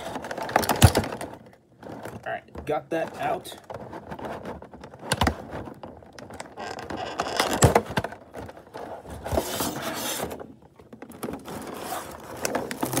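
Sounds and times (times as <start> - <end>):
sharp plastic knocks: 0.0 - 8.5
plastic crinkling: 0.0 - 13.0
plastic scraping: 0.0 - 13.0.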